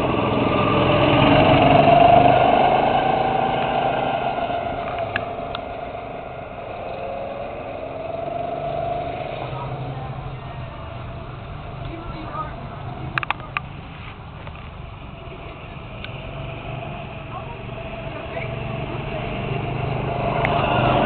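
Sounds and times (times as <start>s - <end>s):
go-kart engines running: 0.0s - 21.0s.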